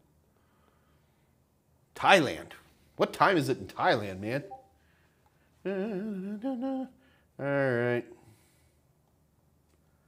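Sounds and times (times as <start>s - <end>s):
man humming: 5.6s - 8.1s.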